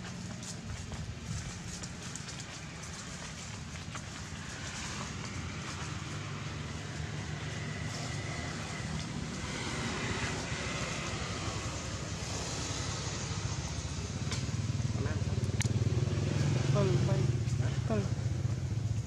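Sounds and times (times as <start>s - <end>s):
vehicle engine hum: 0.0s - 19.0s.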